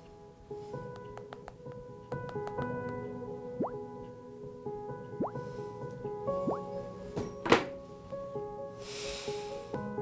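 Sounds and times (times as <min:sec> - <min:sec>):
soft background music: 0:00.0 - 0:10.0
upward-sweeping bloop pop effects: 0:03.6 - 0:03.9, 0:05.2 - 0:05.5, 0:06.3 - 0:06.7.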